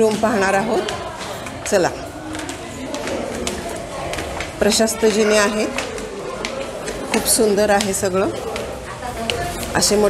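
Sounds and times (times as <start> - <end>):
footsteps on stone stairs: 0.0 - 10.0.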